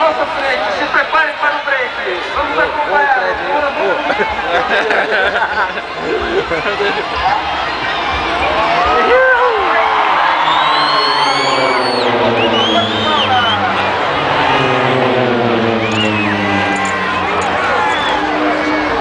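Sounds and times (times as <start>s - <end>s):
crowd chatter: 0.0s - 19.0s
propeller planes passing overhead: 0.0s - 19.0s.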